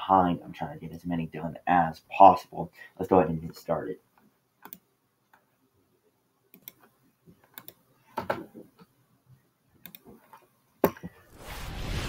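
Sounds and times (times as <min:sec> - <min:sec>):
video intro hiss: 0:11.2 - 0:12.0.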